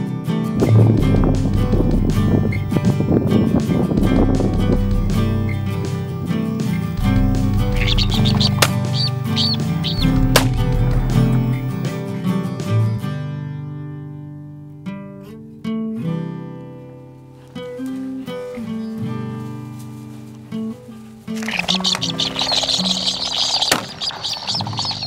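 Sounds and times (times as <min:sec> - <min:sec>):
plucked-string background music: 0:00.0 - 0:17.4.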